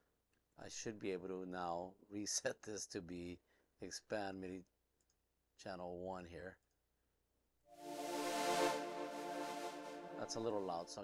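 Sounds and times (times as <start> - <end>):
sustained synth note: 7.8 - 11.0.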